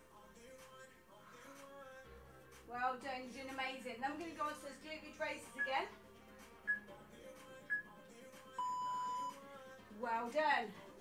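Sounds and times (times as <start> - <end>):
short high beep: 8.6 - 9.3
longer lower beep: 8.6 - 9.4.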